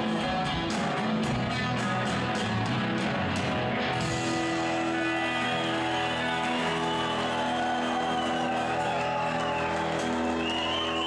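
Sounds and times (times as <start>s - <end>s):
live rock band: 0.0s - 11.0s.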